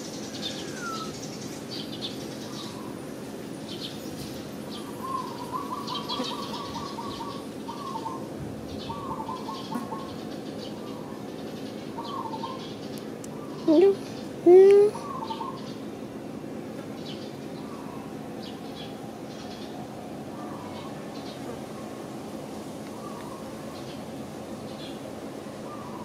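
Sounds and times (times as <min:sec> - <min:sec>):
loud rising bird call: 0:00.0 - 0:01.5, 0:04.8 - 0:11.3, 0:11.9 - 0:12.8, 0:15.0 - 0:15.9, 0:17.6 - 0:22.1, 0:25.6 - 0:26.0
bird trill: 0:00.0 - 0:03.0, 0:03.7 - 0:14.0, 0:15.0 - 0:15.9
birds chirping and whistling: 0:00.0 - 0:03.0, 0:03.6 - 0:15.9, 0:17.0 - 0:19.8
steady low hum: 0:00.0 - 0:26.0.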